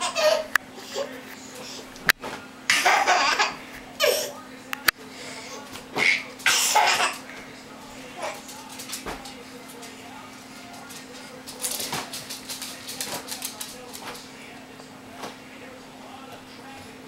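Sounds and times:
toddler laughing: 0:00.0 - 0:01.1, 0:02.7 - 0:04.3.

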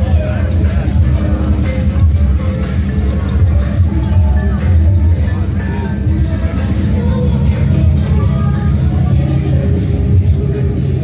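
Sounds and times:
car engines rumbling: 0:00.0 - 0:11.0
street music: 0:00.0 - 0:11.0
voices: 0:00.0 - 0:11.0.

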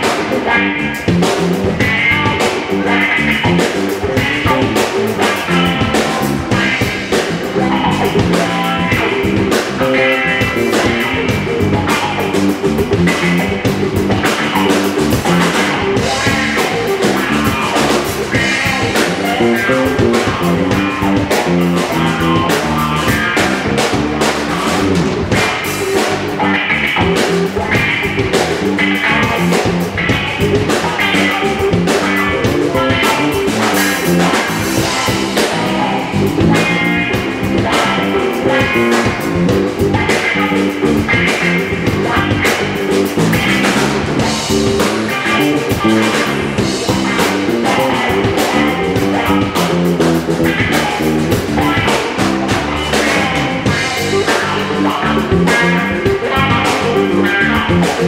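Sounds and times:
blues band playing: 0:00.0 - 0:58.0
drum kit: 0:00.0 - 0:58.0
electric guitar: 0:00.0 - 0:58.0.

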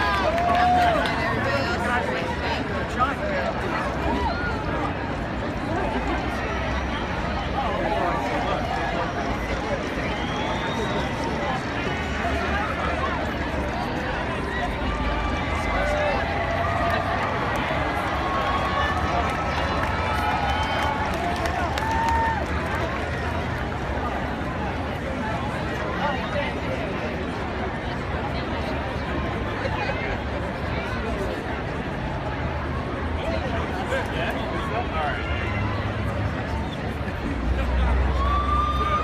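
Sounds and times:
large crowd cheering: 0:00.0 - 0:02.6, 0:03.8 - 0:26.2, 0:32.7 - 0:39.0.

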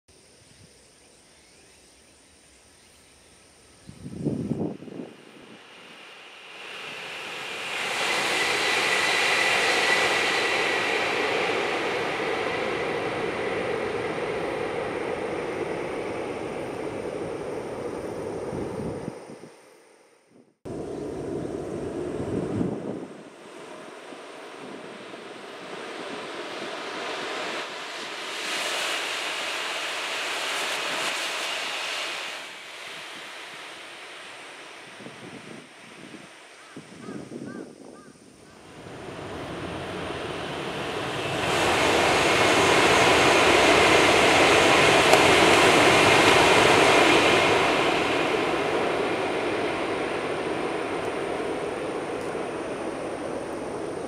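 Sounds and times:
high-speed train passing: 0:03.4 - 0:54.0.

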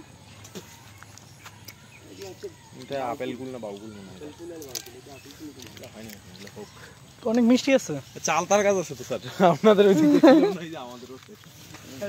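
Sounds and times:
conversation: 0:00.2 - 0:12.0.

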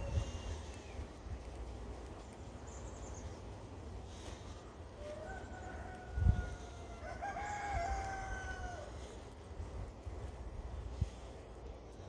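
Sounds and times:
rooster crowing: 0:04.9 - 0:09.2.

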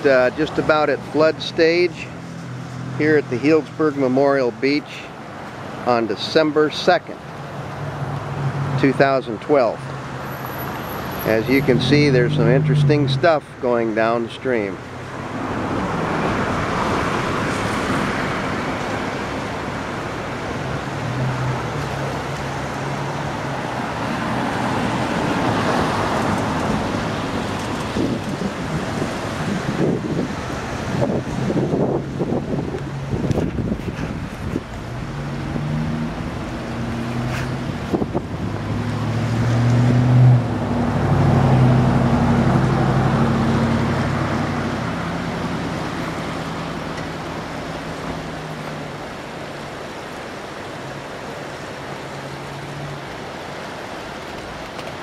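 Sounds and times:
passing vehicle engine hum: 0:00.0 - 0:04.2, 0:07.2 - 0:55.0
river rushing: 0:00.0 - 0:55.0
wind on microphone: 0:23.4 - 0:46.3.

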